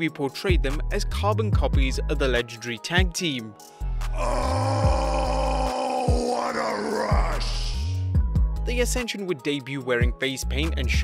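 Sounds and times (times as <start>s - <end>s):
man shouting into a microphone: 4.2s - 8.0s
music with deep bass: 7.0s - 9.0s.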